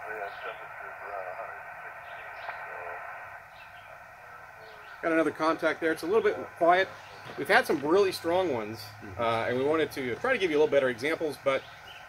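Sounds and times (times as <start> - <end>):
faint wavering radio voice: 0.0 - 11.6
radio static hiss: 0.0 - 12.0.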